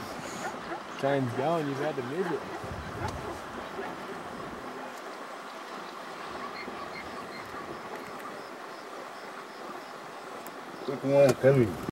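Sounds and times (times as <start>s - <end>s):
low outdoor noise: 0.0s - 11.9s.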